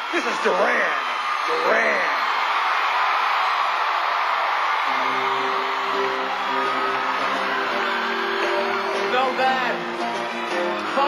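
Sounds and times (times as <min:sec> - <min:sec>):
audience cheering and whooping: 0:00.0 - 0:11.0.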